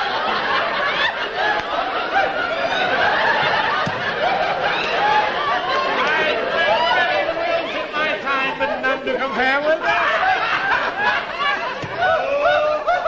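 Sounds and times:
people laughing: 0.0 - 13.0.

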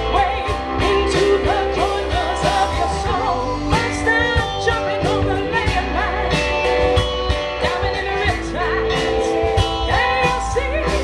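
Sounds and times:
person singing: 0.0 - 6.8, 7.6 - 11.0
bass guitar: 0.0 - 11.0
guitars: 0.0 - 11.0
steady drum beat: 0.0 - 11.0.

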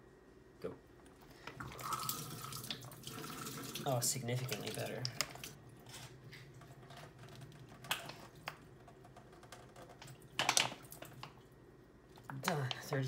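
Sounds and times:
plastic crackling: 4.4 - 11.4.

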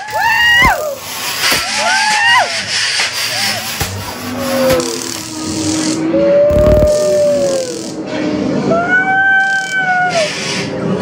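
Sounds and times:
people shrieking: 0.0 - 2.7, 3.3 - 8.0, 8.7 - 10.4
steady scraping hiss: 0.7 - 8.6, 9.5 - 11.0
long drawn-out wail: 4.3 - 10.3.

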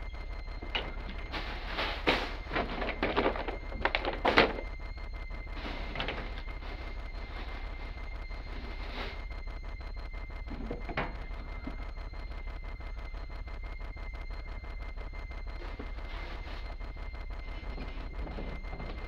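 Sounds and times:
faint high whine: 0.0 - 19.0
low hum: 0.0 - 19.0.

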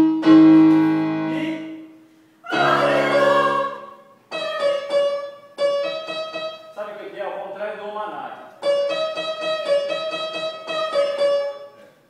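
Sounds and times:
choir singing held chord: 2.4 - 4.8.

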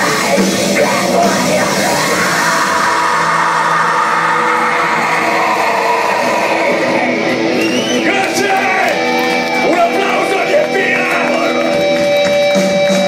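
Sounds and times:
men singing and yelling: 0.0 - 7.2, 7.9 - 11.8
distorted guitars: 0.0 - 13.0
drums: 0.0 - 13.0.

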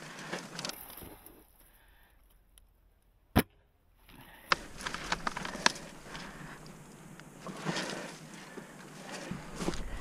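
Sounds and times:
rustling and crunching in snow: 4.6 - 10.0.

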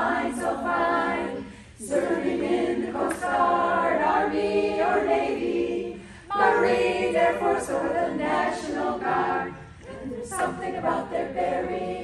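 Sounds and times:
women's choir singing a cappella: 0.0 - 12.0.

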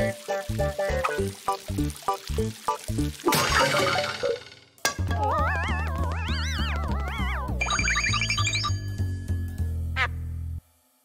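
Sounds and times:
cartoon music with bass line: 0.0 - 10.6.

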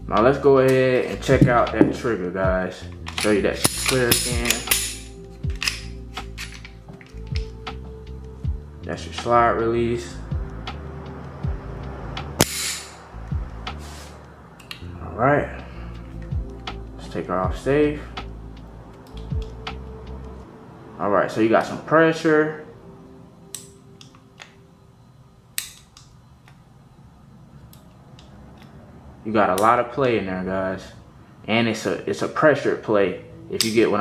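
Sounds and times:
background music with soft beat: 0.0 - 20.7, 22.5 - 26.6
pistol slide snapping forward: 3.0 - 6.8, 12.4 - 13.0, 25.6 - 26.1.

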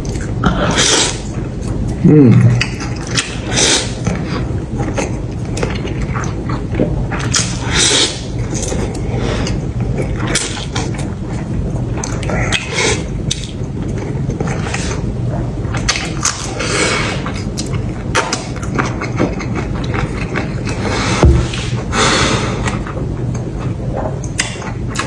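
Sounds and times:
chewing sounds: 0.0 - 21.9, 22.6 - 25.0
man slurping noodles: 20.7 - 22.8.

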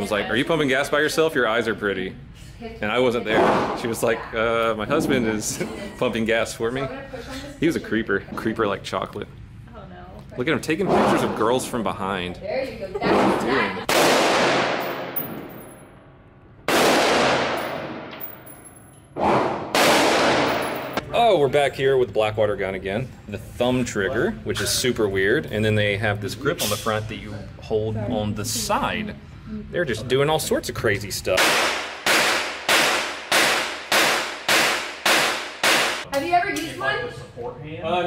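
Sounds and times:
handgun shots with reverberation: 13.9 - 15.6, 16.7 - 18.4, 19.2 - 21.0, 31.4 - 36.0
gunshots echoing indoors: 13.9 - 15.8, 16.6 - 21.0, 31.4 - 36.1.

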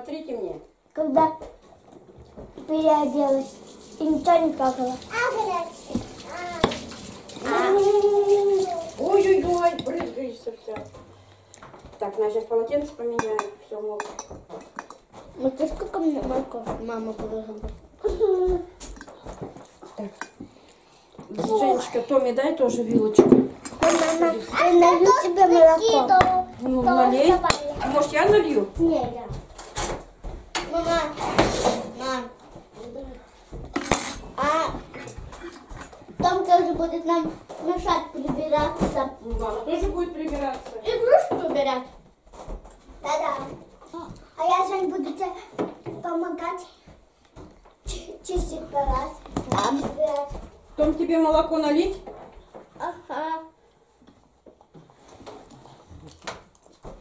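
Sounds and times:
children's voices: 2.6 - 10.4, 23.8 - 28.0, 43.0 - 46.8, 47.9 - 50.4
dishes and cutlery clinking: 5.8 - 11.1, 13.1 - 15.1, 22.9 - 24.5, 33.6 - 35.9
tableware knocking and clicking: 13.1 - 15.0, 23.1 - 24.3, 33.7 - 34.3.

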